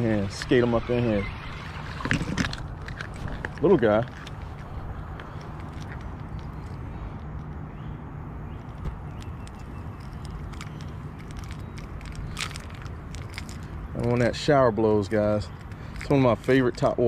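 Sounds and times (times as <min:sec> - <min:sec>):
handling clicks and rustles: 0:00.0 - 0:17.0.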